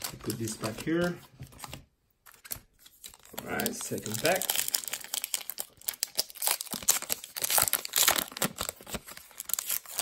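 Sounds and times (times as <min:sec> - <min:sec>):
foil wrapper tearing and crinkling: 0:03.1 - 0:10.0.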